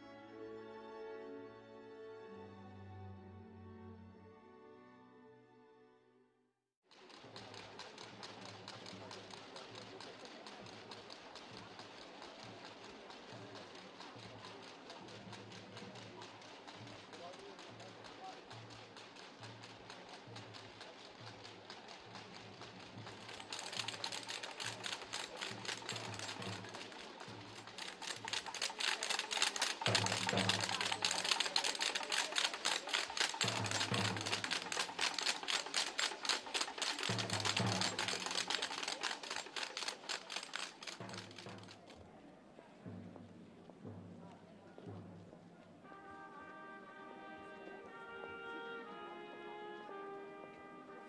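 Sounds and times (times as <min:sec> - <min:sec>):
rapid clicking rattle: 0:06.9 - 0:42.0.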